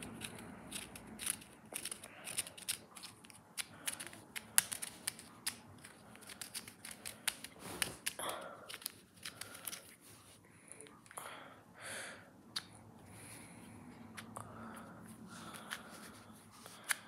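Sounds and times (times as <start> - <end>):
puzzle cube plastic clicks: 0.0 - 10.0.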